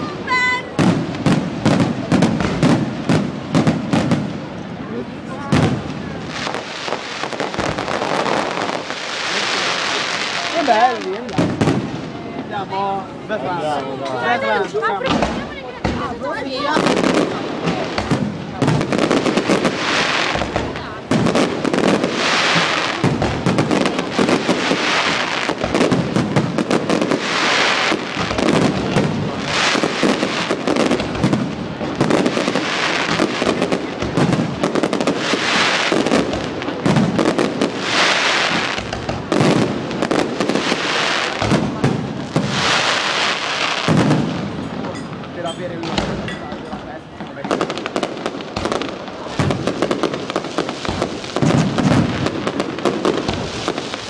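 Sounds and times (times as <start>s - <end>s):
crackling firework stars: 0.0s - 54.0s.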